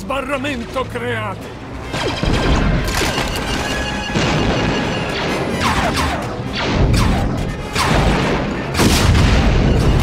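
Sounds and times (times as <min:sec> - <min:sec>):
blaster fire: 0:04.2 - 0:10.0
explosions: 0:04.2 - 0:10.0.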